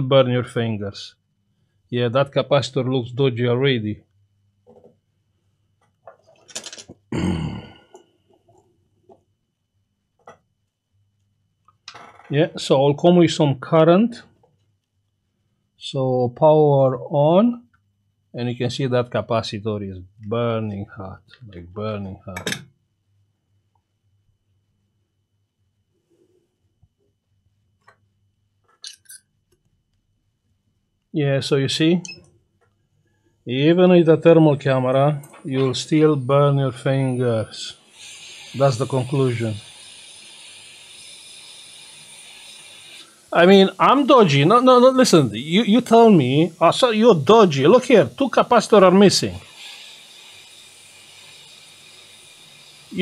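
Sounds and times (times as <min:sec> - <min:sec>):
explosive cough-like burst: 0:07.1 - 0:07.9
man drawing hissing breath: 0:37.7 - 0:43.4, 0:49.4 - 0:53.0.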